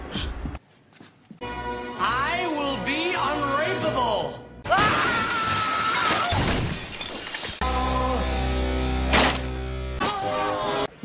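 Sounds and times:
breaking crash: 4.7s - 7.6s.

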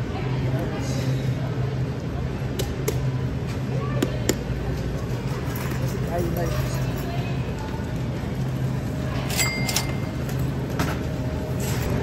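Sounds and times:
low hum of store noise: 0.0s - 12.0s
shopping cart wheels rattling: 4.7s - 12.0s.

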